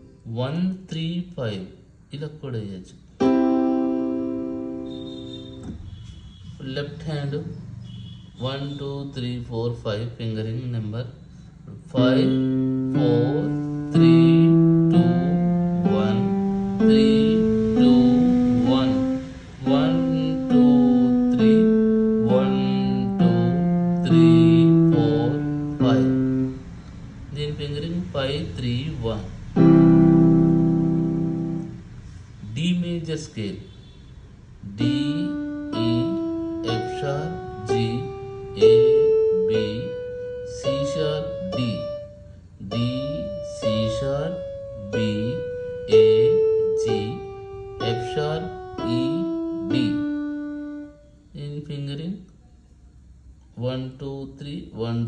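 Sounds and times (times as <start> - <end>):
electronic keyboard scale: 3.2 - 9.1, 11.6 - 33.6, 34.6 - 51.9.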